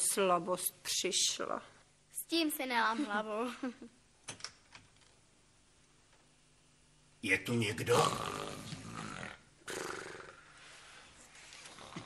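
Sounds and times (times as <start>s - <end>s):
woman snoring loudly: 8.1s - 10.6s, 11.7s - 12.0s.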